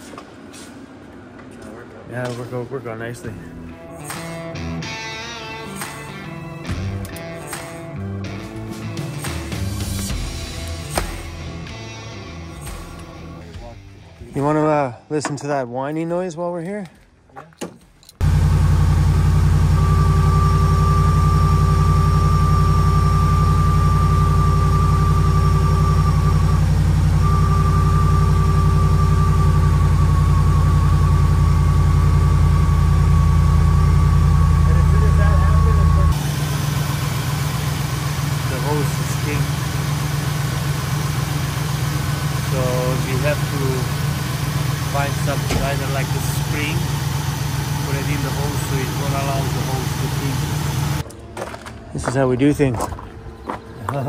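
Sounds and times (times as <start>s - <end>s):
van engine idling: 18.2s - 51.1s
high-pitched whine: 18.2s - 53.6s
voices: 34.6s - 36.2s, 38.3s - 39.8s, 42.4s - 44.0s, 44.7s - 47.0s, 47.7s - 50.6s.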